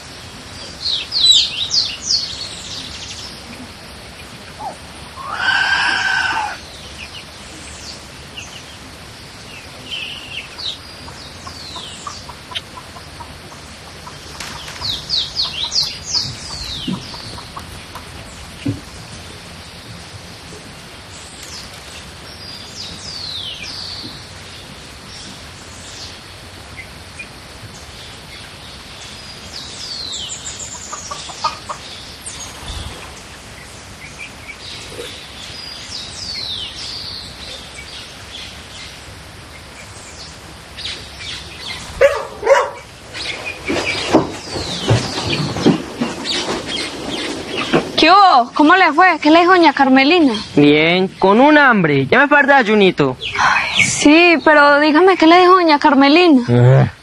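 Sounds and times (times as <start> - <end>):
birds chirping: 0.0 - 57.0
knocks and rustles: 16.2 - 19.2, 43.6 - 48.1.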